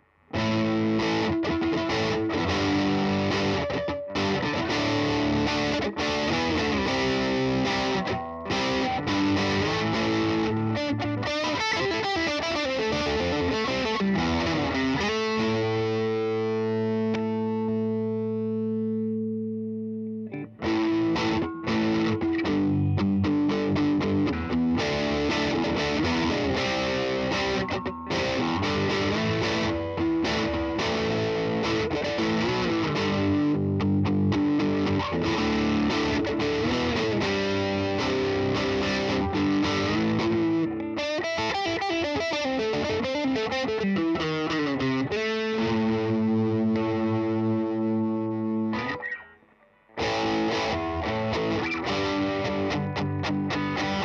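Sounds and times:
electric guitar rock riffing: 0.0s - 54.0s
ringing guitar chord: 0.0s - 54.0s.

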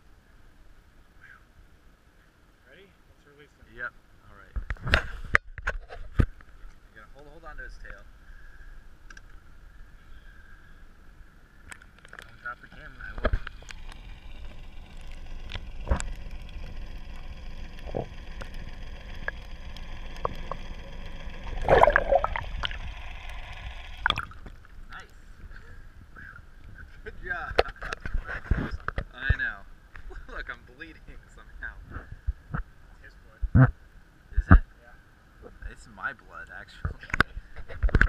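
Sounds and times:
muffled underwater rumble: 9.4s - 29.1s
water gurgling: 11.7s - 25.4s
water splash: 13.3s - 24.8s.

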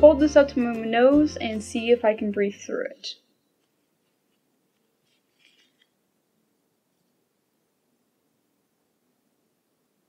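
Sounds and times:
fabric rustling: 3.4s - 6.2s.

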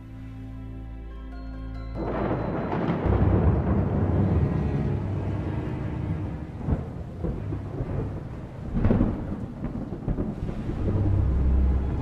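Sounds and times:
loud thunderclap: 2.0s - 12.0s
rain hiss: 2.0s - 12.0s
rolling thunder rumble: 2.0s - 12.0s
sharp thunder crack: 2.0s - 12.0s.

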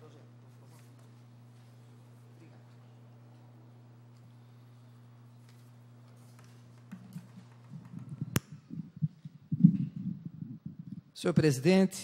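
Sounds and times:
microphone handling bumps: 7.0s - 11.1s.

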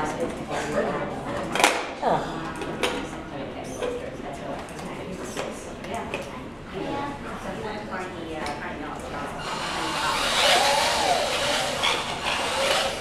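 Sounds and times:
indistinct chatter of onlookers: 0.0s - 13.0s.

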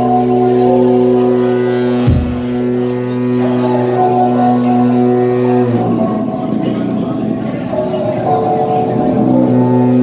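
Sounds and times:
low synthesizer drone: 0.0s - 10.0s.

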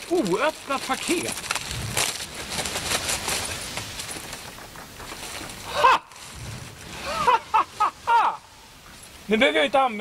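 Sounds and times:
plastic packaging crinkling: 0.0s - 6.4s.

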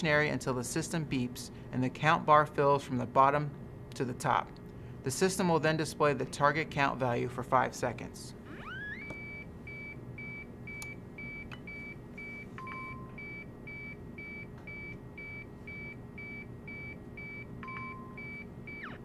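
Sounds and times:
longer lower beeps: 8.7s - 19.0s.

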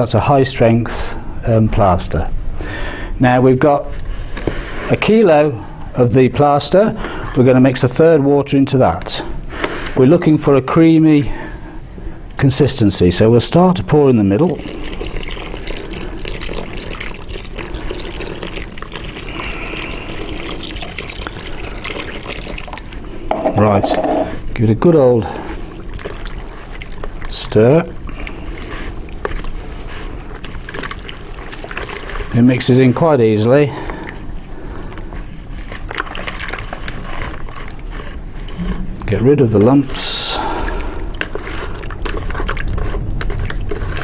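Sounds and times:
water pouring into plastic bucket: 14.3s - 23.8s, 25.2s - 44.0s
stick knocking against bucket: 23.3s - 24.3s.

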